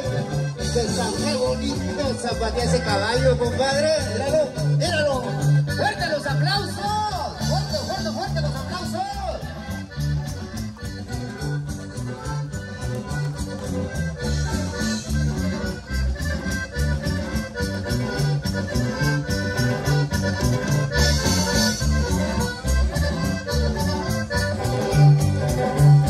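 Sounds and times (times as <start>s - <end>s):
accordion: 0.0s - 26.0s
bass: 0.0s - 26.0s
drums keeping a steady beat: 0.0s - 26.0s.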